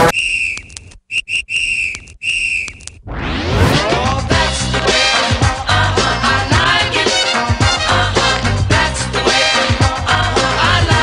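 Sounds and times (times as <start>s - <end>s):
whistle blasts: 0.0s - 2.9s
dance music with rising sweep: 3.1s - 4.6s.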